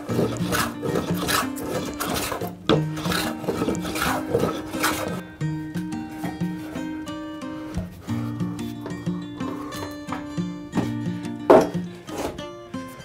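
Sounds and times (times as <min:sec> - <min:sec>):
sanding block rubbing on timber: 0:00.0 - 0:05.2
background music: 0:00.0 - 0:13.0.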